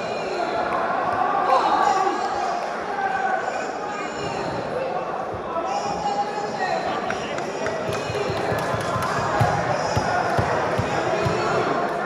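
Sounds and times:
crowd chatter echoing: 0.0s - 12.0s.

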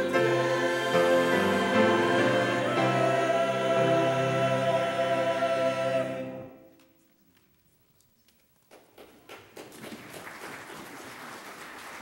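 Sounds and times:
church choir singing: 0.0s - 6.8s.

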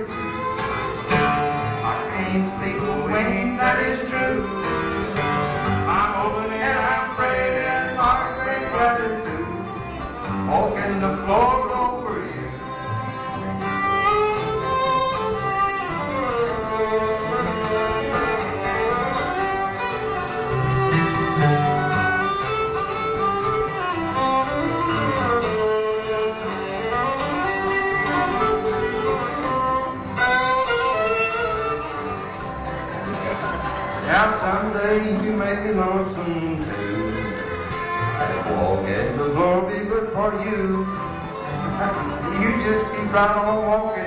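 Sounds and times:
fiddle melody: 0.0s - 44.0s
plucked guitar: 0.0s - 44.0s.

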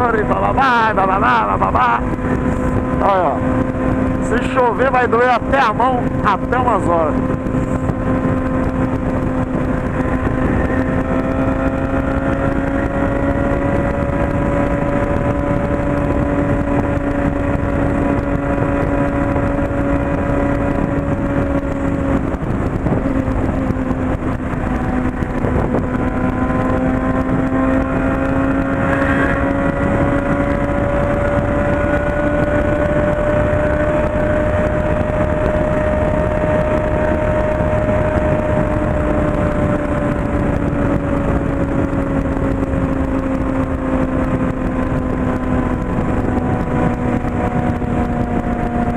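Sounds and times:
motorcycle engine cruising: 0.0s - 48.9s
wind and road noise: 0.0s - 48.9s.

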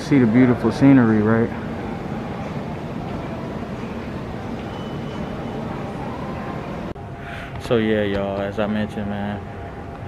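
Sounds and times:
faint high tone: 1.9s - 7.0s.

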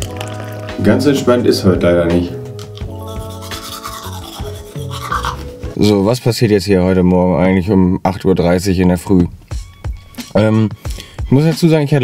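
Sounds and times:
soft background music: 0.0s - 12.0s
teeth brushing with toothbrush: 2.8s - 5.6s.

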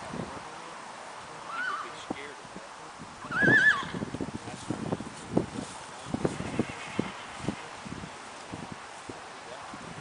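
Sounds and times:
horse whinnying: 1.5s - 2.0s, 3.2s - 4.1s.

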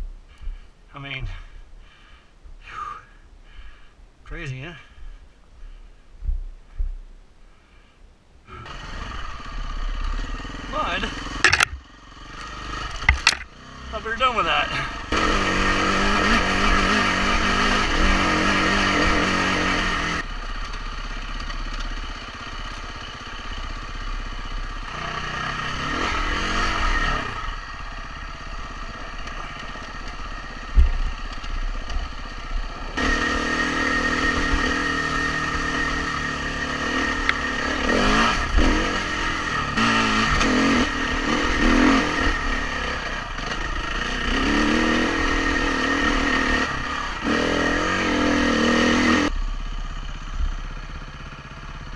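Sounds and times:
dirt bike engine revving: 8.5s - 49.4s.

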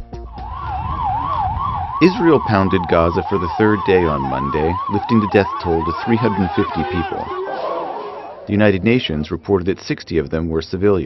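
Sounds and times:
music: 0.0s - 1.1s
emergency siren wailing: 0.0s - 8.8s.

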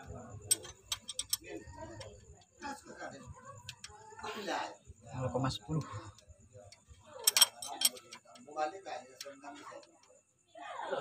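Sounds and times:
hand tools clicking on metal: 0.0s - 2.1s, 6.7s - 8.5s.

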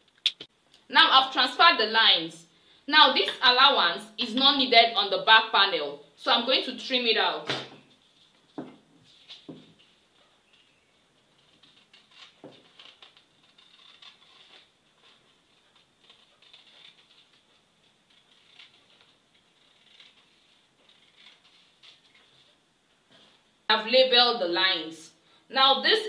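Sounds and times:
paper rustling: 7.9s - 23.4s
scissors snipping paper: 11.4s - 22.2s.

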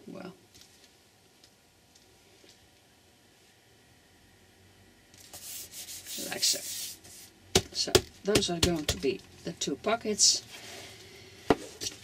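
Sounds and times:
hands rubbing paper: 5.3s - 7.3s
hands tapping on board: 7.6s - 9.0s.

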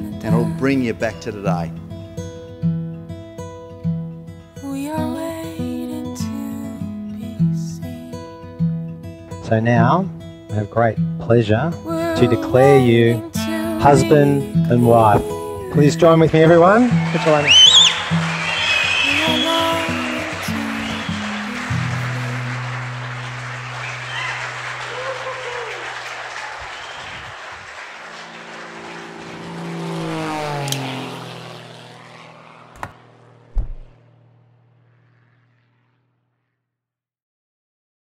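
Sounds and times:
music: 0.0s - 17.4s, 18.0s - 24.9s
guests applauding and cheering: 16.1s - 30.0s
low thump: 32.7s - 34.0s.

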